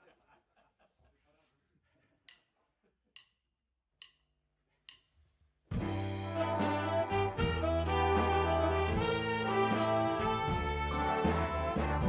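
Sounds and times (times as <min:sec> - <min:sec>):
drumstick count-in clicks: 0:04.0 - 0:04.3, 0:04.9 - 0:05.1
big band brass and saxophones: 0:05.7 - 0:12.0.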